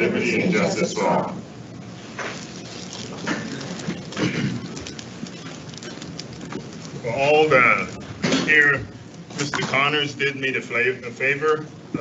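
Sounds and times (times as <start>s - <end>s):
chairs and clothing rustling: 2.0s - 9.9s.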